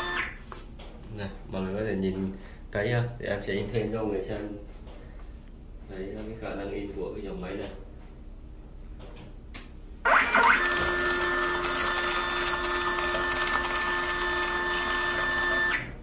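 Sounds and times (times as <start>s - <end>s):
label printer motor whine: 0.0s - 0.4s, 10.1s - 16.0s.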